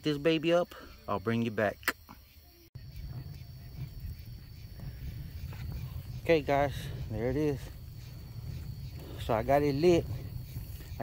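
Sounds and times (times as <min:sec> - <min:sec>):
fire low rumble: 0:02.8 - 0:11.0.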